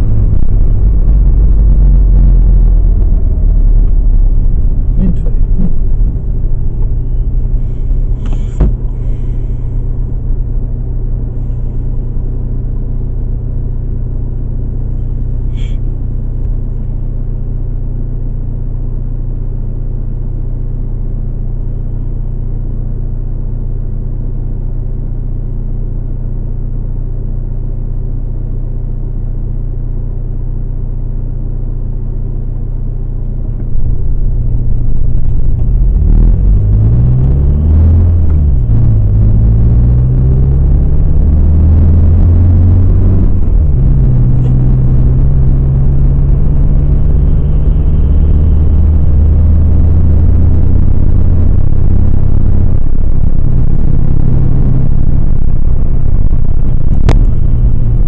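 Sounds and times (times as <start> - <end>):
car engine idling and accelerating: 0.0 - 58.0.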